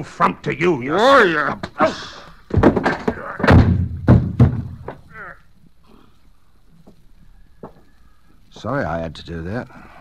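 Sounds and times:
loud thuds of a fall: 0:02.5 - 0:05.1.

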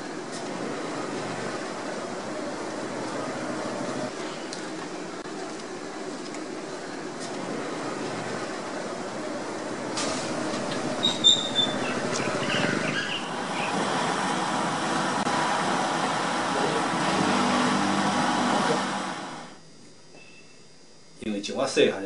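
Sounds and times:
gas burner roaring: 0:00.0 - 0:19.6
short high squeaks: 0:11.0 - 0:13.3.

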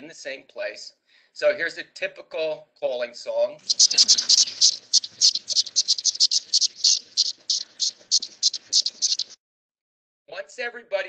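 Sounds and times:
cicada buzzing pulses: 0:03.6 - 0:09.4.

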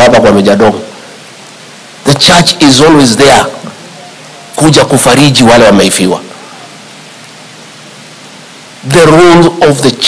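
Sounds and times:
man speaking: 0:00.0 - 0:01.0, 0:02.0 - 0:06.7, 0:08.8 - 0:10.0
steady background hiss: 0:00.0 - 0:10.0.

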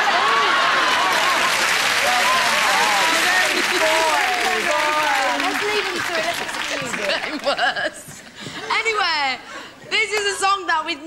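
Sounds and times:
crowd cheering: 0:00.0 - 0:07.5
audience applauding: 0:00.0 - 0:07.8.

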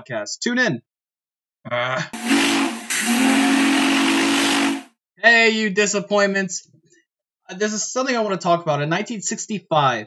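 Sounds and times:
loud hissing steam: 0:02.2 - 0:04.8
steam whistle blowing: 0:02.2 - 0:04.9.

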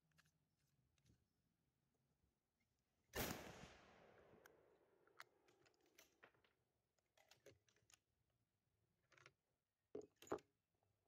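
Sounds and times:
rifle shot echo: 0:03.2 - 0:04.5
faint handling clicks and knocks: 0:05.0 - 0:08.3, 0:08.9 - 0:10.7.

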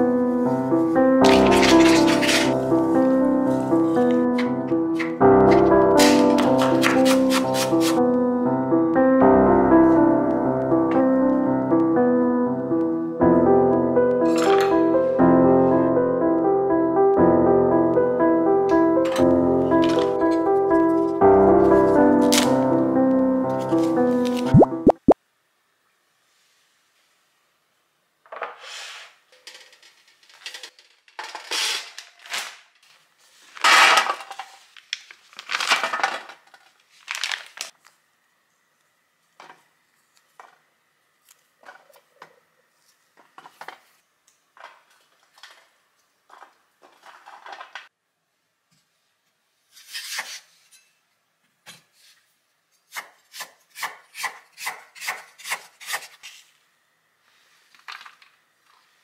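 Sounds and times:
music: 0:00.0 - 0:25.2.

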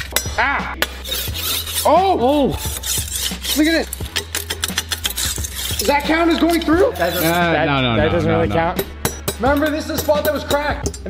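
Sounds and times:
serrated blade scraping brick: 0:00.8 - 0:07.8.

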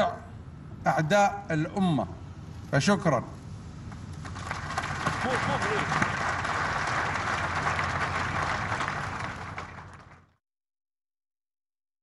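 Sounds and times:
crowd applauding: 0:04.2 - 0:10.4.

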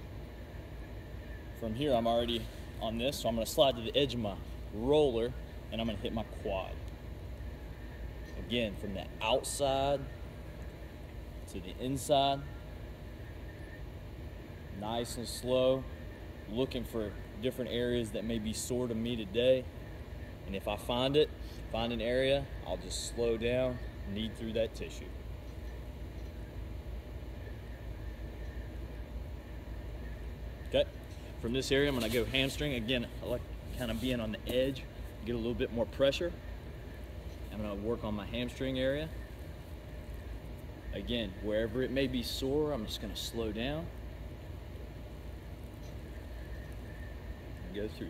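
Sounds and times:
low rumble and hiss of room noise: 0:00.0 - 0:48.0
man speaking: 0:01.6 - 0:06.8, 0:08.4 - 0:10.2, 0:11.5 - 0:12.6, 0:14.7 - 0:15.9, 0:16.5 - 0:19.7, 0:20.5 - 0:25.2, 0:30.7 - 0:36.4, 0:37.5 - 0:39.2, 0:40.9 - 0:43.9, 0:47.6 - 0:48.0.

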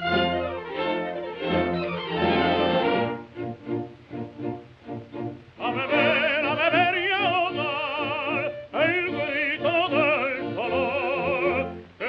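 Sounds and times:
operatic baritone singing: 0:05.5 - 0:12.0.

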